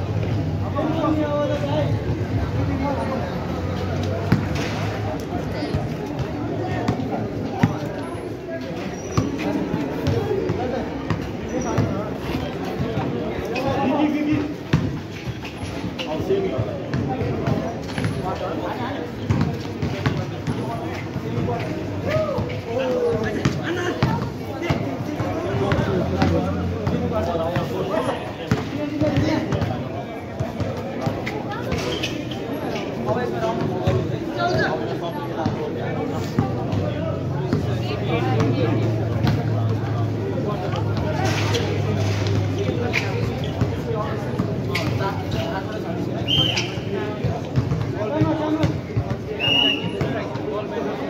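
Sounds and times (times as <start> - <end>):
people talking and calling: 0.0 - 51.0
basketball bouncing on concrete: 14.3 - 15.1, 16.5 - 18.3, 19.2 - 27.8, 28.5 - 31.8, 38.3 - 40.0, 42.3 - 45.3, 47.1 - 49.3.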